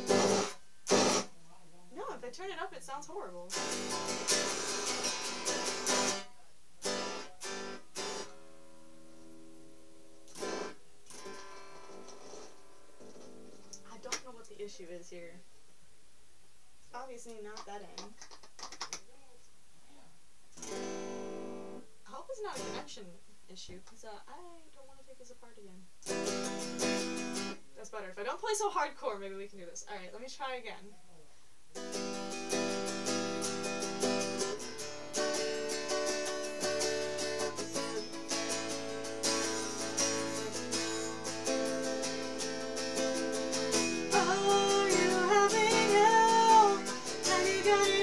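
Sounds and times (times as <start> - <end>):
electric guitar strums: 0.0 - 1.3, 3.5 - 6.2, 6.8 - 8.6, 10.3 - 13.8, 20.6 - 21.8, 26.0 - 27.6, 31.8 - 48.0.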